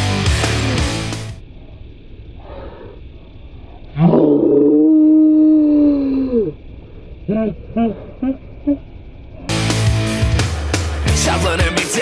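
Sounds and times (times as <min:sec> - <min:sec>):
rock music: 0:00.0 - 0:01.4, 0:09.5 - 0:12.0.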